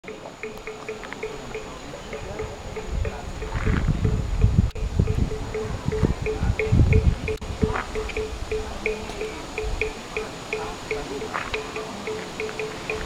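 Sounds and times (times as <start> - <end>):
short evenly spaced pips: 0.0 - 13.0
low microphone rumble: 2.2 - 9.9.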